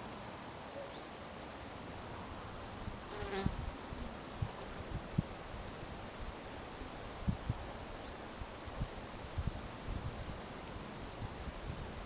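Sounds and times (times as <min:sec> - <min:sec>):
bumblebee wing buzz: 0:03.0 - 0:03.7, 0:04.4 - 0:05.2.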